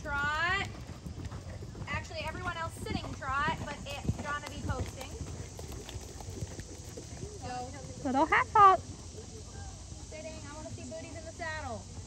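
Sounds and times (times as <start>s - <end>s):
horse hooves trotting on sand: 0.0s - 12.0s.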